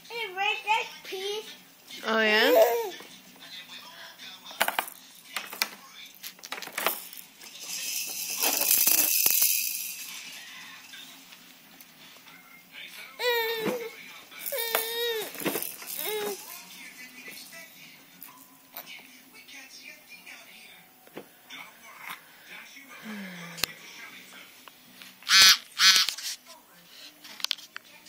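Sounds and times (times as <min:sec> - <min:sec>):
baby squealing: 0:02.4 - 0:03.0, 0:13.2 - 0:13.9, 0:16.0 - 0:16.4, 0:25.3 - 0:26.1.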